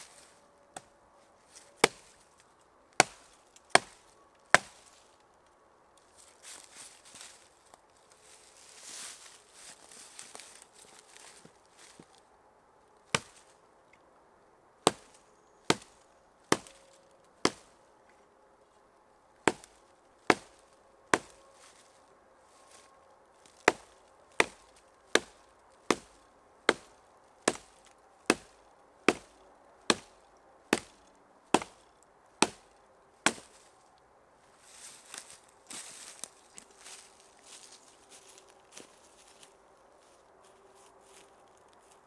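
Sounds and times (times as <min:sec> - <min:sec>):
hatchet chopping branch: 0:01.8 - 0:02.2, 0:03.0 - 0:04.9, 0:13.1 - 0:13.4, 0:14.8 - 0:16.8, 0:17.4 - 0:17.8, 0:19.5 - 0:21.7, 0:23.5 - 0:33.7.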